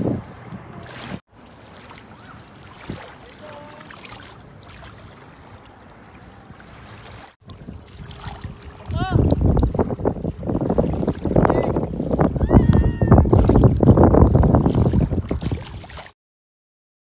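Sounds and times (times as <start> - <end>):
wind buffeting microphone: 0.0 - 1.2, 2.2 - 3.3, 5.3 - 16.1.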